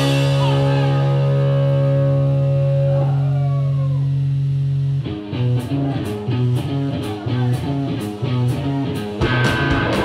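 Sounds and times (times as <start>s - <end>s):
sustained electric guitar chord: 0.0s - 7.9s.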